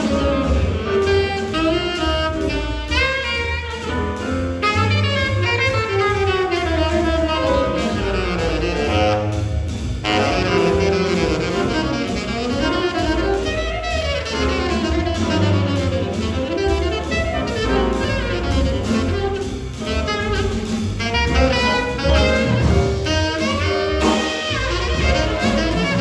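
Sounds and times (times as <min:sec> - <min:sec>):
double bass: 0:00.0 - 0:26.0
drum kit: 0:00.0 - 0:26.0
piano: 0:00.0 - 0:26.0
saxophone: 0:00.0 - 0:26.0
trombone: 0:00.0 - 0:26.0.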